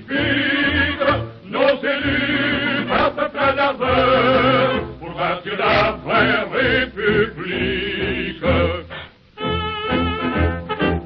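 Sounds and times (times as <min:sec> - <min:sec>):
person singing with vibrato: 0:00.0 - 0:10.4
instrumental accompaniment: 0:00.0 - 0:11.0.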